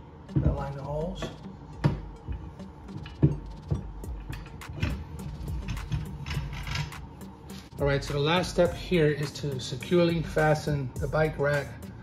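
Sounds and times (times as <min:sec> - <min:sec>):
background music: 0:00.0 - 0:12.0
metal clunks and scrapes: 0:02.9 - 0:07.7.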